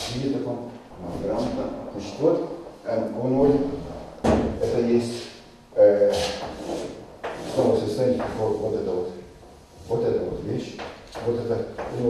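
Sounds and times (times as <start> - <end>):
man talking: 0.0 - 4.0, 4.6 - 6.4, 7.4 - 12.0.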